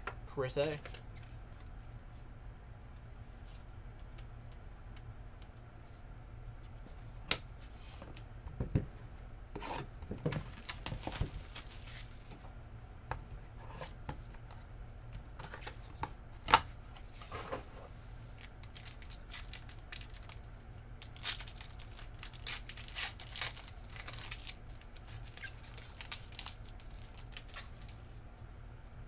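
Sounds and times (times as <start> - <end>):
foil wrappers tearing and crinkling: 10.4 - 12.3, 18.4 - 28.1.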